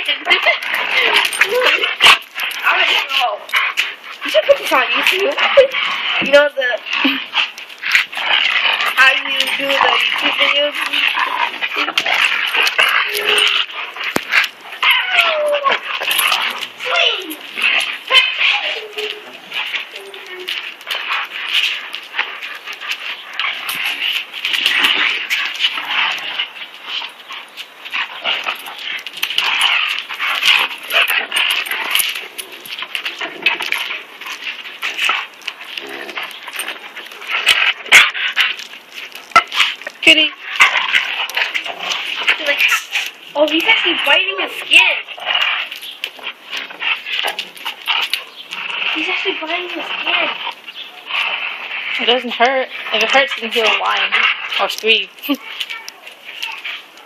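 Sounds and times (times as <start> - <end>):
dogs play-fighting mouthing: 0.0 - 57.0
dog whining: 8.7 - 20.9.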